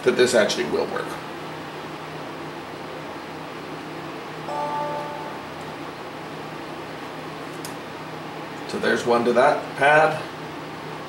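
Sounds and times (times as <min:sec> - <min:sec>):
low equipment hum: 0:00.0 - 0:11.0
short tone: 0:04.5 - 0:05.7.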